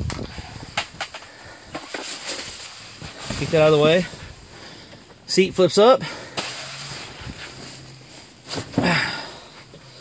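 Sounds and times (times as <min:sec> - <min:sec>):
fabric rustling: 0:06.3 - 0:09.0
person grunting: 0:08.8 - 0:09.4.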